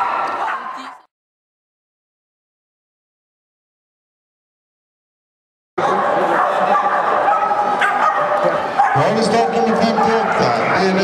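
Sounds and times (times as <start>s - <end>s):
dog barking and yipping: 5.8s - 11.0s
people talking: 8.4s - 11.0s.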